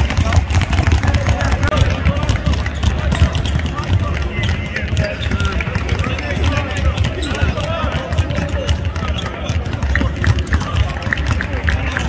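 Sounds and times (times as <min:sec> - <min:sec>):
sneaker squeaks: 0:00.0 - 0:11.2.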